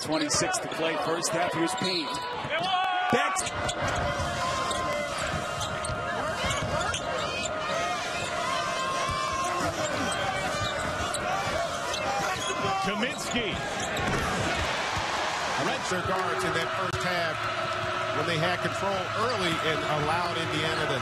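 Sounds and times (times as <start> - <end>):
arena crowd noise: 0.0 - 21.0.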